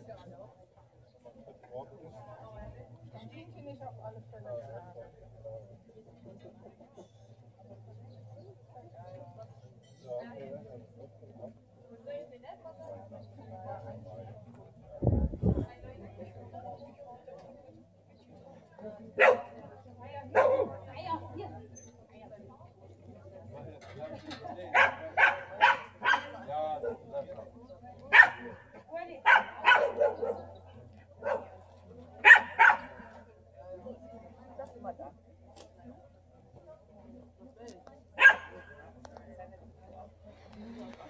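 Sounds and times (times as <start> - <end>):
faint voices murmuring: 0.0 - 41.0
dog barking: 19.2 - 19.6, 20.4 - 20.8, 24.7 - 27.0, 28.1 - 28.6, 29.2 - 30.5, 31.2 - 31.6, 32.2 - 33.0, 38.2 - 38.7.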